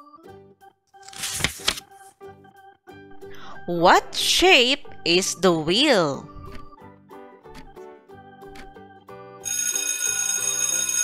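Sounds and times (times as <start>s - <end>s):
light background music: 0.0s - 11.0s
alarm clock ringing: 9.4s - 11.0s.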